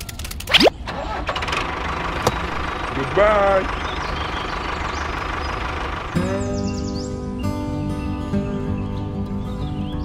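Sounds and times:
tractor engine idling: 0.8s - 7.2s.

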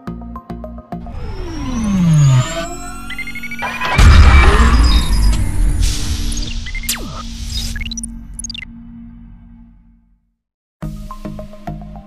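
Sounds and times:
loud hit: 1.0s - 8.3s
falling synth sweep: 1.0s - 8.6s
rising electronic tones: 1.0s - 8.8s.

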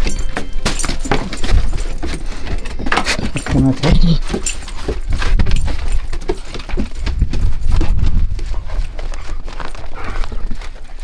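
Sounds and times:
footsteps on wooden floor: 0.8s - 11.0s
footsteps in snow: 3.5s - 11.0s.

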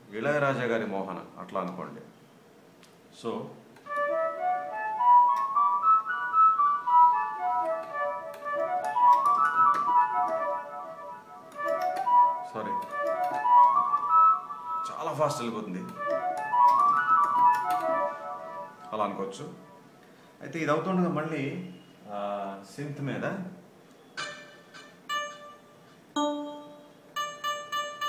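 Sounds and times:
keyboard flute note runs: 3.9s - 19.0s.

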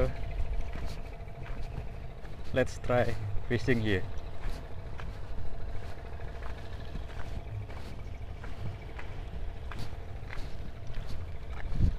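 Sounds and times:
distant engine hum: 0.0s - 11.9s
wind on microphone: 11.0s - 11.9s.

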